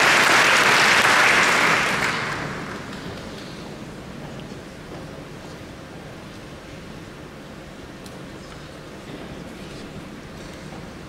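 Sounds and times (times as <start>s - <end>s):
concert hall room tone: 0.0s - 11.0s.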